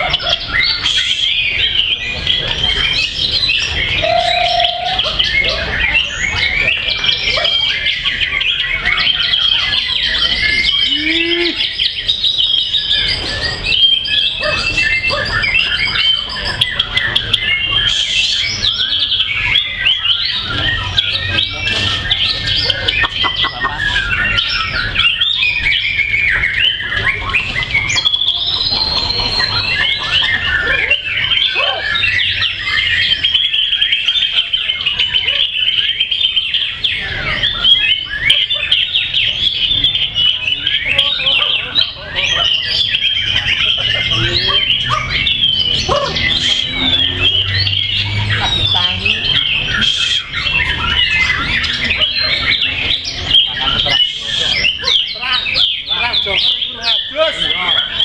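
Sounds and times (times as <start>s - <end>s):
songbirds singing whistles: 0.0s - 58.0s.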